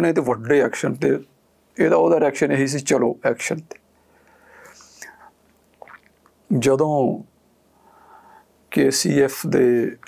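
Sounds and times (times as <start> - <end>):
faint hiss: 0.0 - 10.0
man breathing softly: 4.0 - 5.4, 7.7 - 8.6.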